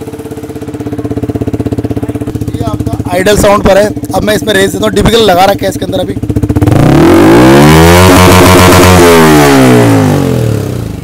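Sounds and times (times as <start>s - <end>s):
motorcycle engine revving: 0.0s - 11.0s.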